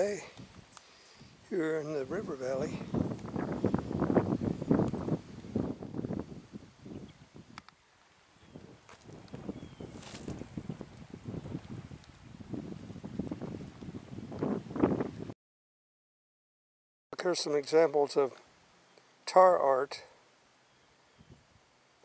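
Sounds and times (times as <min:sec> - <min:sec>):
wind buffeting microphone: 0:00.0 - 0:07.6, 0:08.4 - 0:15.3.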